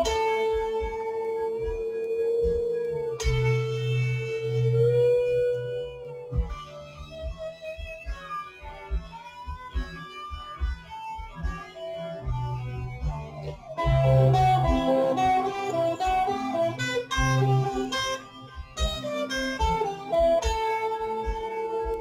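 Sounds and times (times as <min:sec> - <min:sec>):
bass: 0:00.0 - 0:07.4, 0:08.0 - 0:22.0
drums: 0:00.0 - 0:22.0
electric guitar lead melody: 0:00.0 - 0:22.0.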